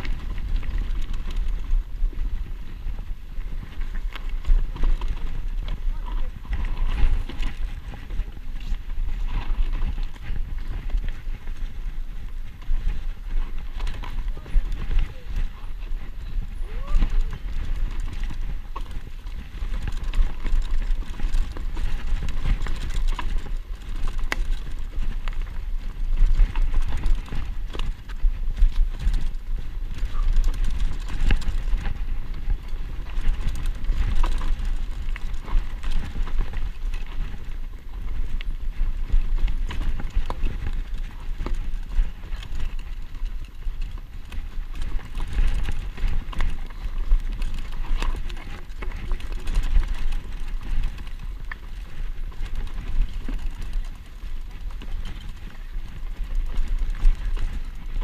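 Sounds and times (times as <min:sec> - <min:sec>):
mountain bike rattling over rocks: 0:00.0 - 0:58.0
wind rumble on microphone: 0:00.0 - 0:58.0.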